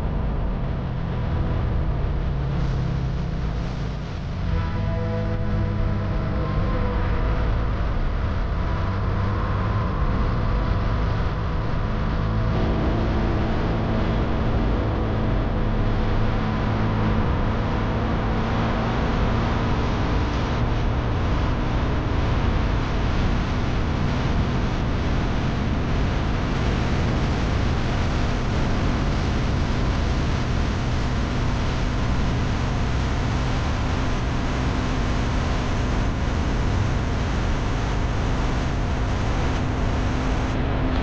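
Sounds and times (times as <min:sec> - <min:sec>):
vehicle road noise: 0:00.0 - 0:41.0.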